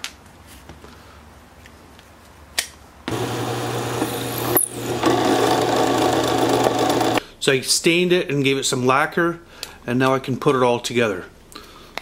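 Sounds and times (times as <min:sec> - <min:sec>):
drill press drilling wood: 0:03.1 - 0:07.2.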